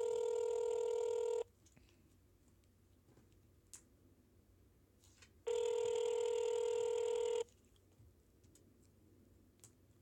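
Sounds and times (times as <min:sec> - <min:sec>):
telephone ringback tone: 0:00.0 - 0:01.5, 0:05.5 - 0:07.5.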